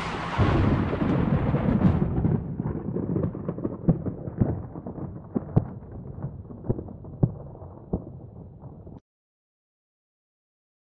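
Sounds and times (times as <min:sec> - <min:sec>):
deep thunder-like rumble: 0:00.0 - 0:09.0
crackles and pops: 0:02.6 - 0:09.0.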